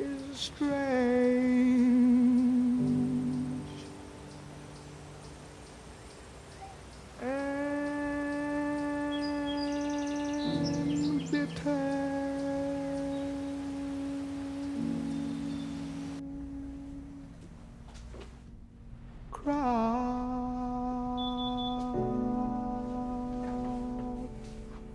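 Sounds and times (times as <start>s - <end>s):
low sustained drone: 7.2s - 17.9s, 18.5s - 24.9s
long held humming note: 7.2s - 18.0s, 19.4s - 24.9s.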